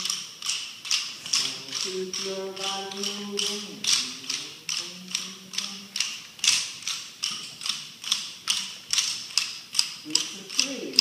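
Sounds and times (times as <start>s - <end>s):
wooden rhythm sticks clacking: 0.0s - 11.0s.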